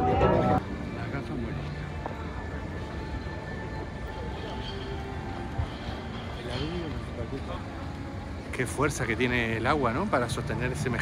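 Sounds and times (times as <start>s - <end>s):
background music: 0.0s - 11.0s
city ambience: 0.0s - 11.0s.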